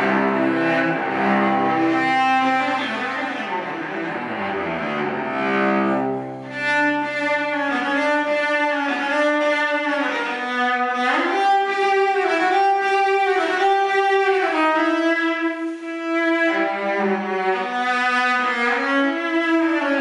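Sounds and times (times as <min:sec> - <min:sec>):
bowed cello sustained notes: 0:00.0 - 0:20.0.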